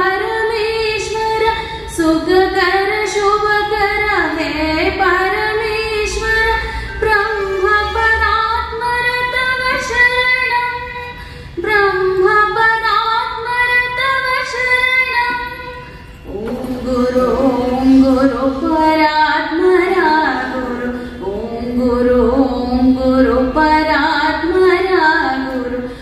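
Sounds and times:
woman singing: 0.0s - 26.0s.

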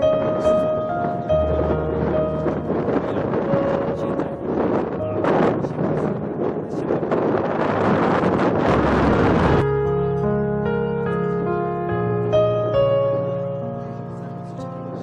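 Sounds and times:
soft background music: 0.0s - 15.0s
wind rushing on microphone: 0.0s - 15.0s.

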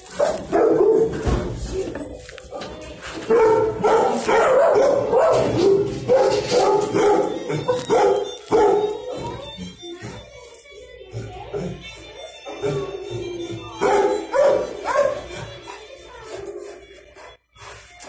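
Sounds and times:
dogs barking: 0.0s - 1.5s, 2.4s - 9.4s, 13.8s - 17.3s
background music: 11.1s - 18.0s.

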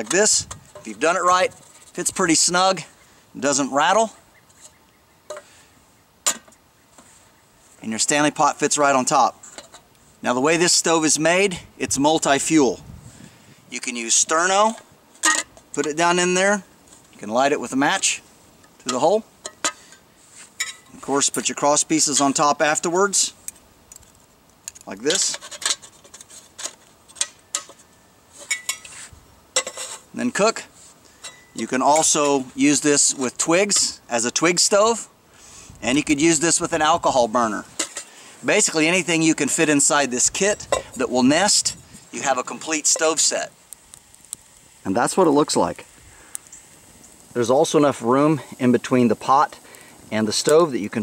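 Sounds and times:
light metallic clinks and taps: 31.2s - 32.4s.

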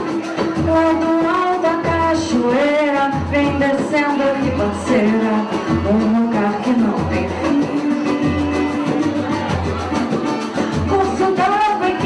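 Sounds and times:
hand percussion: 0.0s - 12.0s
small band playing samba: 0.0s - 12.0s
woman singing into a microphone: 0.0s - 12.0s.

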